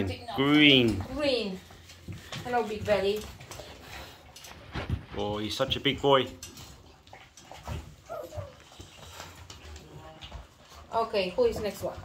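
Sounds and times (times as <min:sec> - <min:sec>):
puppy whimpering: 0:07.7 - 0:09.1.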